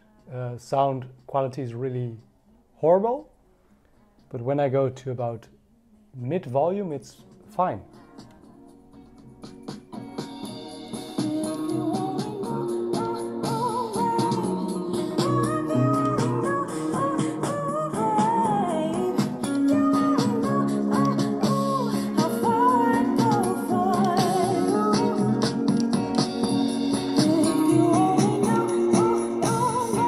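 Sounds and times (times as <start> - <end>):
woman singing soul-pop song on speakers: 10.4 - 30.0.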